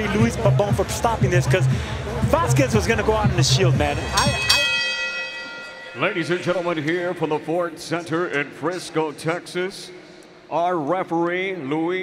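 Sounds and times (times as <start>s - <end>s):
boxing ring bell ringing: 4.0s - 8.2s.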